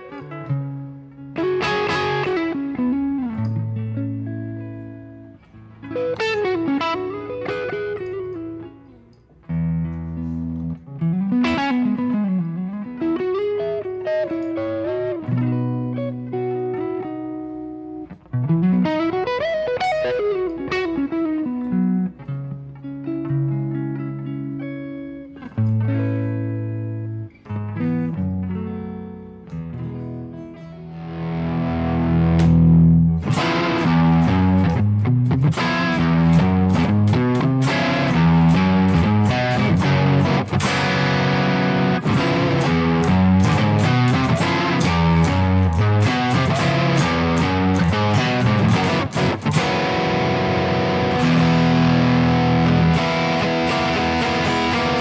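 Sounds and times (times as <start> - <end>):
electric guitar solo: 0.0 - 55.0.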